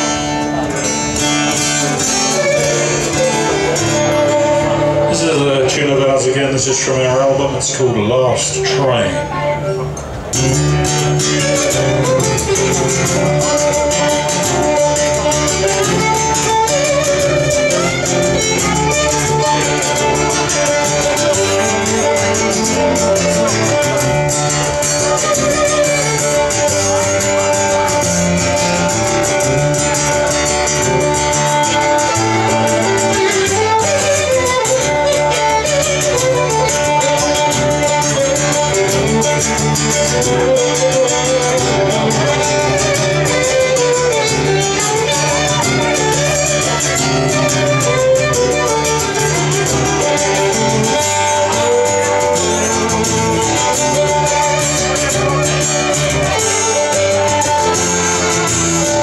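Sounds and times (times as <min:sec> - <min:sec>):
acoustic guitar strumming: 0:00.0 - 0:59.0
fiddle holding long notes: 0:00.0 - 0:59.0.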